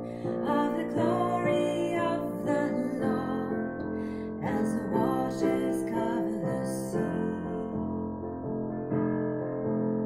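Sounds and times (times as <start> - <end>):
piano chords: 0.0 - 10.0
woman singing a hymn: 0.1 - 8.0.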